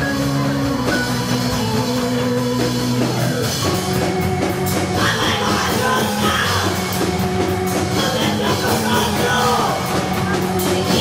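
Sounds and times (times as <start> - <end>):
drums: 0.0 - 11.0
live punk band playing: 0.0 - 11.0
synthesizer: 0.0 - 11.0.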